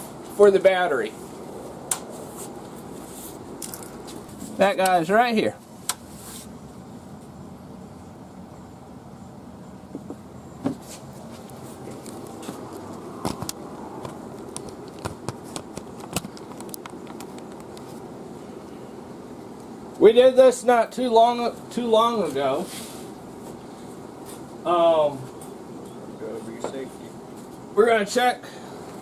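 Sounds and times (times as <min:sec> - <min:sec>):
low background noise: 0:00.0 - 0:29.0.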